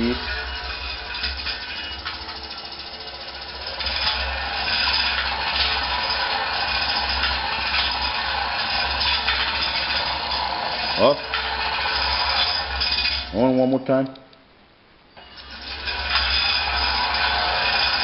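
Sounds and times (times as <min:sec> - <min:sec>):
kettle agitator humming: 0:00.0 - 0:13.4, 0:15.2 - 0:18.0
scraper blades rattling: 0:00.0 - 0:13.5, 0:15.2 - 0:18.0.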